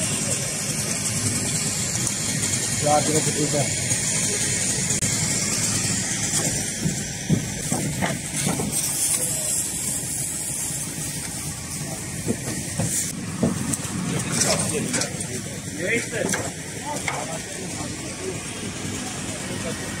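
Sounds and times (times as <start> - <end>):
steady hiss: 7.5 - 13.2.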